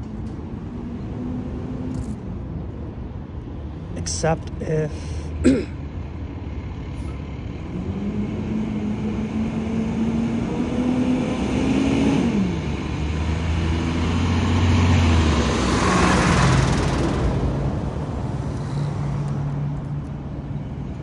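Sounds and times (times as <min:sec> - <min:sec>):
vehicle passing close: 0:07.2 - 0:20.0.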